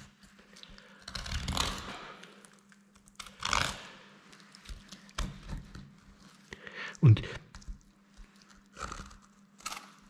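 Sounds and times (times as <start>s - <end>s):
knife scraping and tearing meat: 0.0s - 6.5s, 7.6s - 10.0s.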